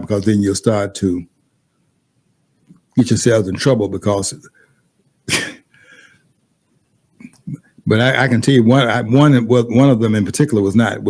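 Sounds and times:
man sneezing or coughing: 5.2s - 6.0s
faint breathy sound: 5.7s - 6.4s.

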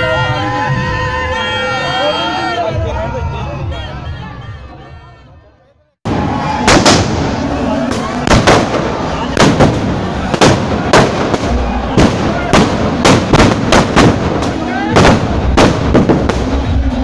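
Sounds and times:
fire crackling: 6.1s - 17.0s
firecrackers banging: 6.1s - 17.0s.

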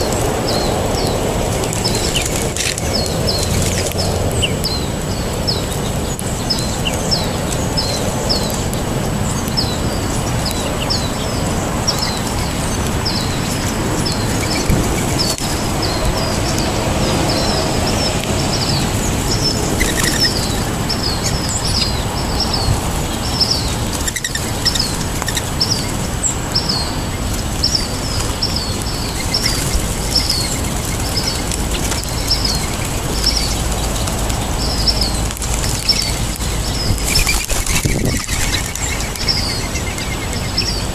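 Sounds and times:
small songbird chirping: 0.0s - 40.9s.

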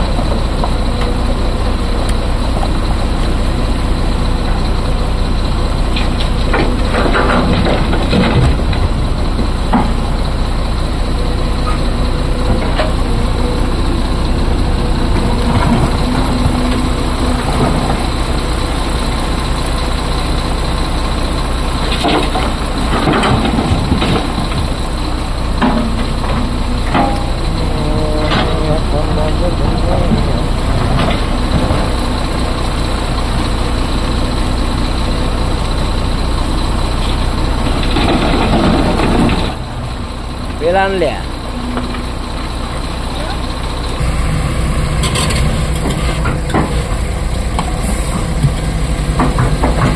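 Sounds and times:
excavator diesel engine: 0.0s - 49.9s
truck idling: 0.0s - 49.9s.

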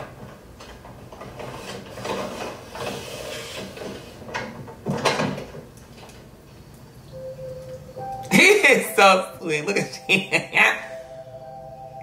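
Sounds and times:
objects rustling and knocking: 0.0s - 6.4s.

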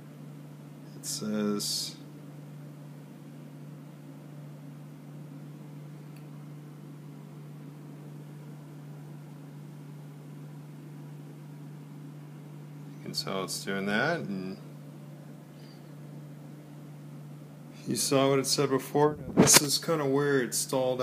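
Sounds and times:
low hum: 18.6s - 19.8s.

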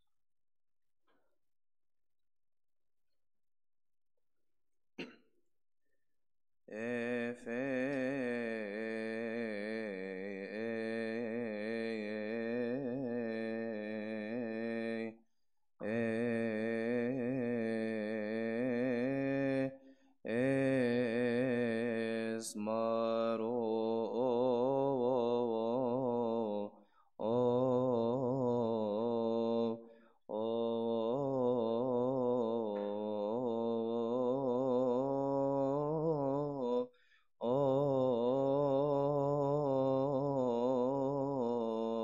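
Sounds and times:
man chanting a hymn: 6.7s - 15.1s, 20.3s - 42.0s.

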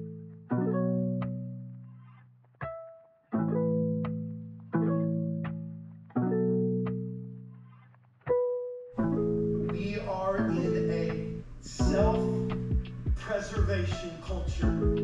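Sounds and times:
plucked string chords ringing: 0.0s - 2.0s, 2.6s - 7.7s, 8.3s - 15.0s
brighter music layer: 0.0s - 15.0s.

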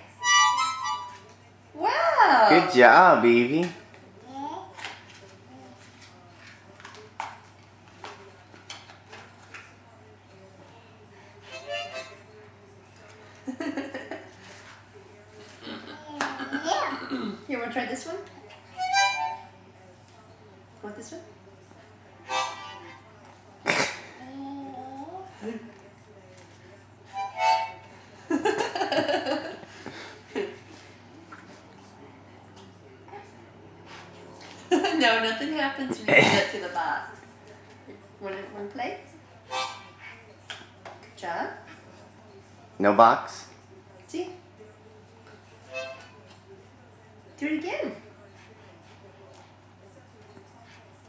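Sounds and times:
harmonica notes: 0.1s - 1.2s, 18.7s - 19.5s, 22.2s - 23.0s, 27.1s - 27.9s, 39.4s - 40.0s, 45.7s - 46.2s.

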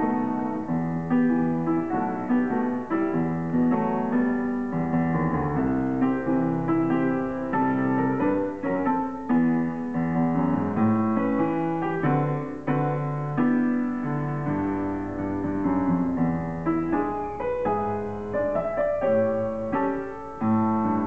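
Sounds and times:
solo grand piano: 0.0s - 21.0s.

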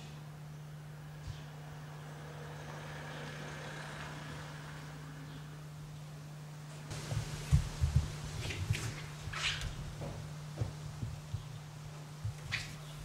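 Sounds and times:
steady low hum: 4.2s - 13.0s.

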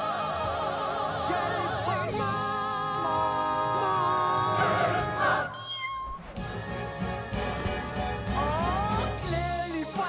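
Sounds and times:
film music: 0.0s - 10.0s
cartoon kitten meow: 5.5s - 6.2s.

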